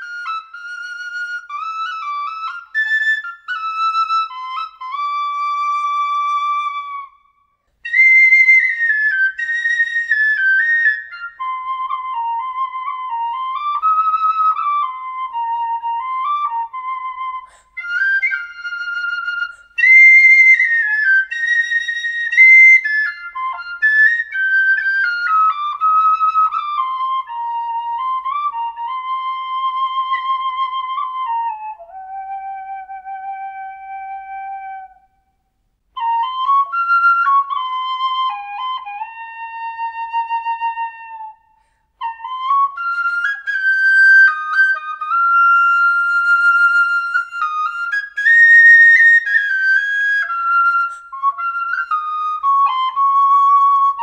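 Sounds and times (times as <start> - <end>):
tin whistle melody: 0.0 - 54.0.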